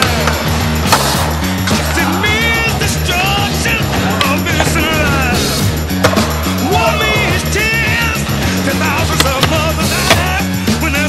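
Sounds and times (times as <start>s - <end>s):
skateboard clacks: 0.0s - 2.0s, 9.0s - 10.4s
skateboard wheels rolling on concrete: 0.0s - 10.4s
rock music: 0.0s - 11.0s.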